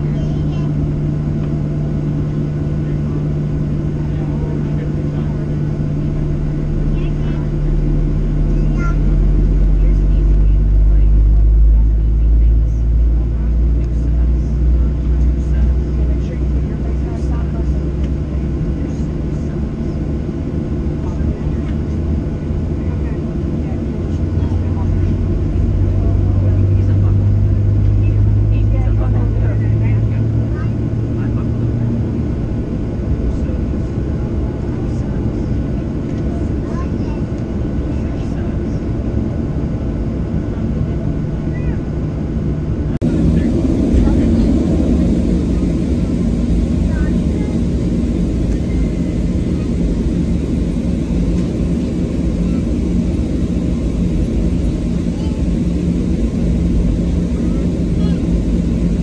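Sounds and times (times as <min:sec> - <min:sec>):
airplane cabin drone: 0:00.0 - 0:59.0.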